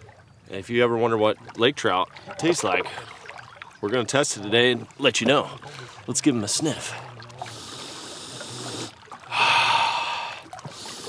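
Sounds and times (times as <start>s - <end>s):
loud nasal sniff: 7.5s - 8.9s
faint breath in: 7.5s - 11.0s.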